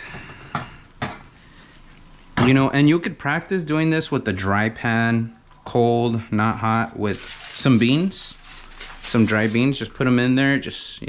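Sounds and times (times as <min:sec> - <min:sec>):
eggs sizzling in a frying pan: 0:00.0 - 0:03.9.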